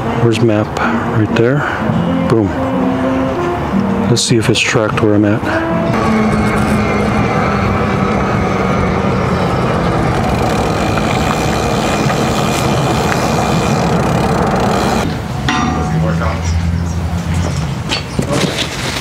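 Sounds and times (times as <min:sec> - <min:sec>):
bicycle road noise: 0:00.0 - 0:19.0.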